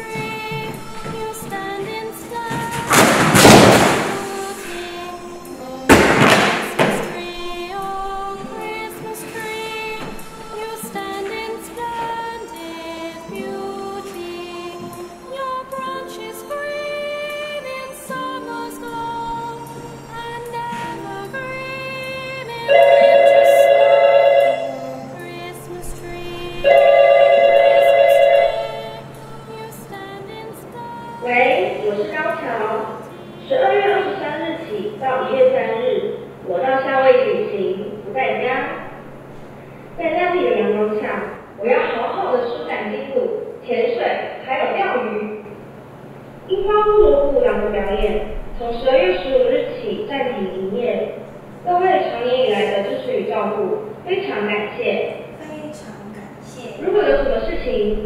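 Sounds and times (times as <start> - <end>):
music with singing voice: 0.0 - 23.8, 24.4 - 35.4
books thrown onto floor: 2.5 - 4.3, 5.9 - 7.0
phone electronic ringtone: 22.6 - 25.1, 26.6 - 29.1.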